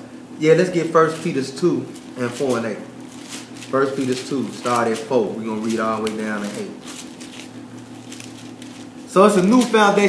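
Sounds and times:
steady low hum: 0.0s - 10.0s
thin pages being turned: 1.0s - 10.0s.

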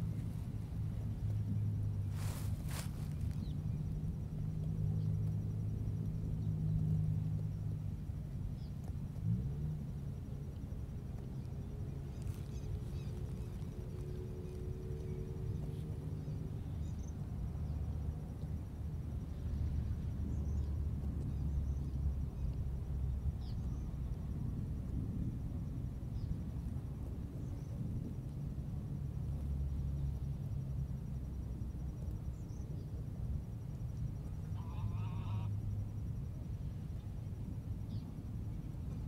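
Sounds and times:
low rumble: 0.0s - 34.6s
honk-like call: 34.6s - 35.5s.

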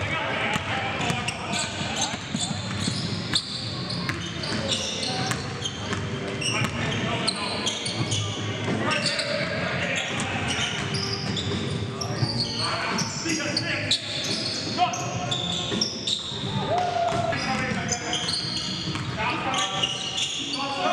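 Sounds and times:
sneakers squeaking: 0.3s - 20.9s.

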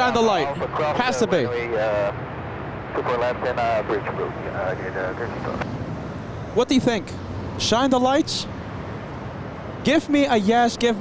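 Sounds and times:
jet rumble: 0.5s - 7.7s.

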